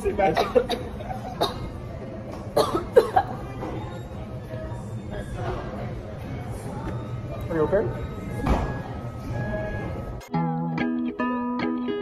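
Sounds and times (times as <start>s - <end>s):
person coughing behind a hand: 0.2s - 1.7s, 2.6s - 3.4s.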